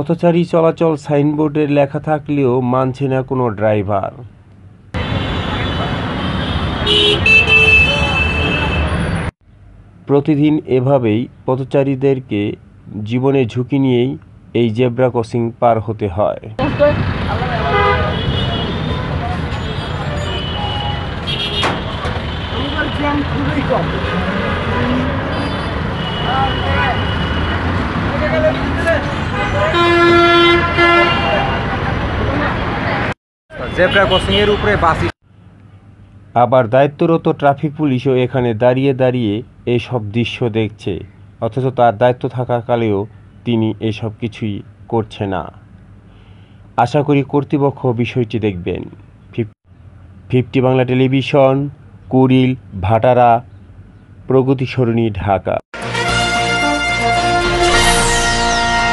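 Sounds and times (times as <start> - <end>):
city street traffic: 0.0 - 58.9
vehicle horn honking: 5.0 - 9.2, 17.7 - 23.3, 24.8 - 27.6, 29.2 - 31.8, 33.5 - 34.8, 55.8 - 58.9.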